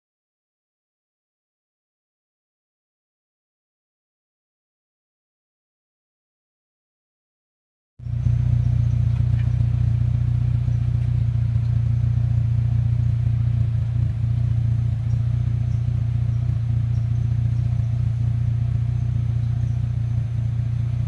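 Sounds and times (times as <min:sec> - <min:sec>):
car engine idling: 0:08.0 - 0:21.0.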